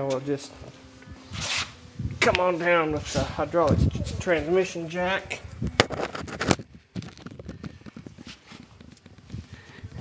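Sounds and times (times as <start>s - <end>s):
camera set down on concrete: 5.8s - 7.6s.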